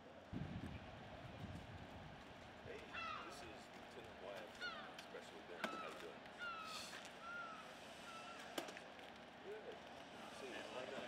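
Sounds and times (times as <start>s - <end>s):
bird calling: 2.9s - 3.6s, 4.5s - 5.0s, 5.6s - 8.6s.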